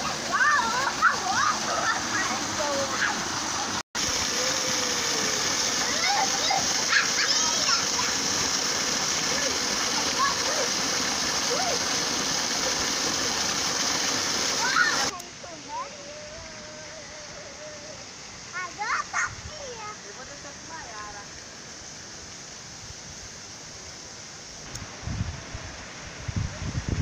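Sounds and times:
children splashing: 0:00.0 - 0:13.4, 0:14.0 - 0:15.2
water pouring from a pipe: 0:00.0 - 0:15.2.

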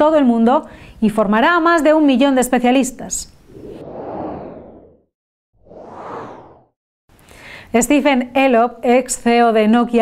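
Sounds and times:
whoosh sound effect: 0:03.5 - 0:06.7.

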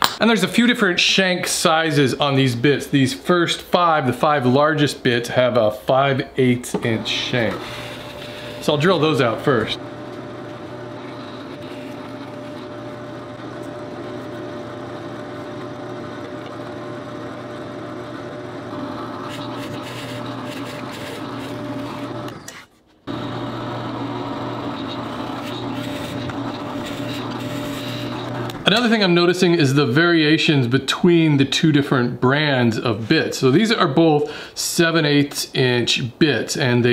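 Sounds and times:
drill press motor humming: 0:06.7 - 0:29.1
drill bit boring into plywood: 0:06.8 - 0:16.8, 0:18.1 - 0:29.0.

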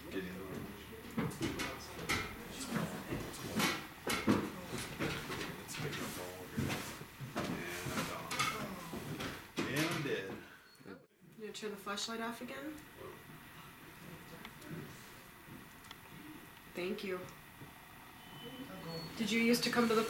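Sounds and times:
people talking: 0:16.2 - 0:17.3, 0:18.4 - 0:20.0.

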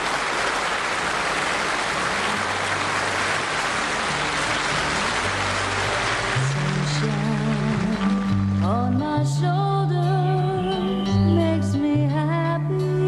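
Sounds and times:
audience applause: 0:00.0 - 0:09.0.

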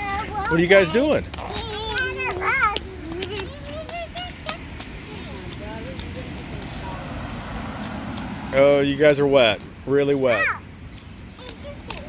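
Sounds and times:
young child's voice: 0:00.0 - 0:00.6, 0:01.4 - 0:04.8, 0:10.3 - 0:10.6, 0:11.3 - 0:12.0
feet splashing in puddle: 0:01.5 - 0:09.7.

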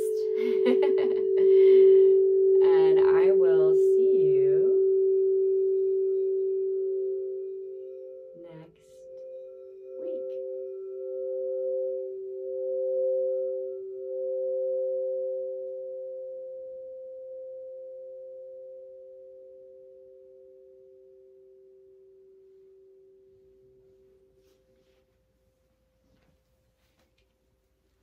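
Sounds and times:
crystal singing bowls ringing: 0:00.0 - 0:25.3.

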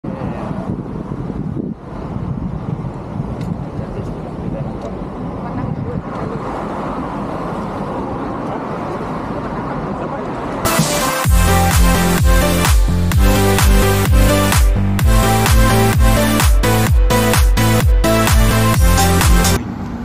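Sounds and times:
road traffic rumble: 0:00.0 - 0:20.0.

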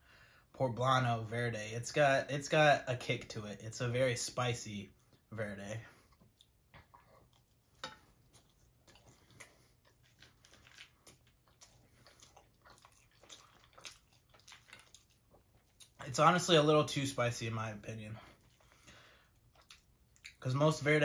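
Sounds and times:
faint chewing: 0:05.9 - 0:16.1, 0:18.2 - 0:20.4.

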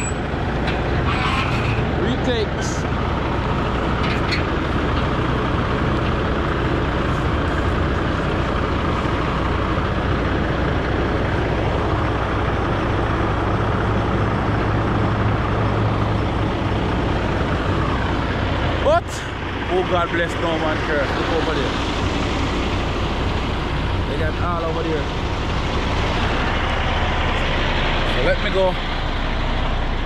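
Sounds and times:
heavy diesel machinery running: 0:00.0 - 0:30.0.

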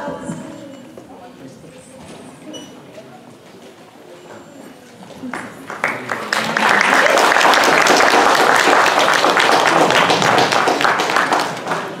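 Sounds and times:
audience applauding: 0:05.2 - 0:12.0.

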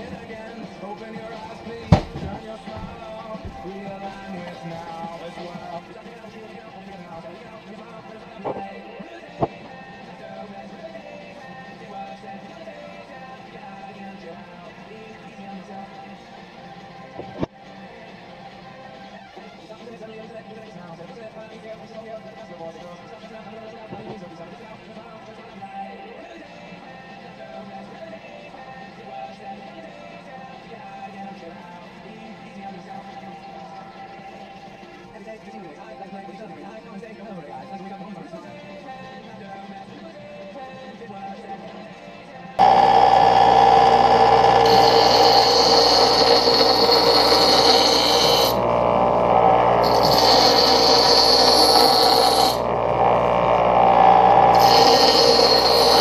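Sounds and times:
radio playing music: 0:00.0 - 0:56.0.

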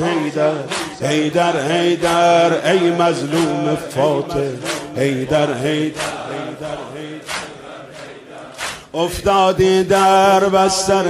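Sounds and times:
men chanting: 0:00.0 - 0:11.0
chest-beating slap: 0:00.7 - 0:01.0, 0:04.6 - 0:05.0, 0:07.3 - 0:07.6, 0:08.6 - 0:08.9.

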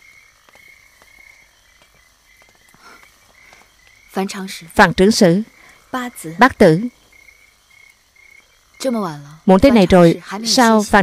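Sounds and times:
woman speaking: 0:04.1 - 0:07.0, 0:08.8 - 0:11.0.

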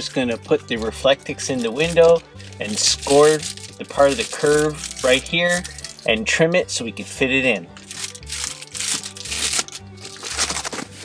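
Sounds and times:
background music with bass line: 0:00.0 - 0:11.0
foil insulation crinkling: 0:00.8 - 0:06.1, 0:07.8 - 0:11.0.

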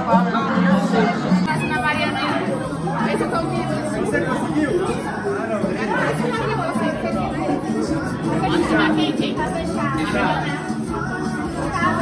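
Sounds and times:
music playing: 0:00.0 - 0:12.0
people chatting: 0:00.0 - 0:12.0.

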